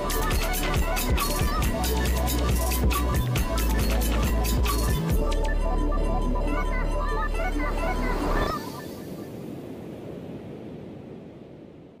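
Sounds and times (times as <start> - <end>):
background music: 0.0 - 8.9
ocean surf rushing: 7.6 - 12.0.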